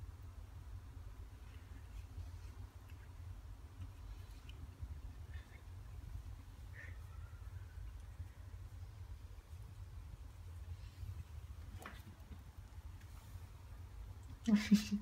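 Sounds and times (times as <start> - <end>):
steady low rumble: 0.0 - 15.0
faint bird chirps: 5.3 - 8.5.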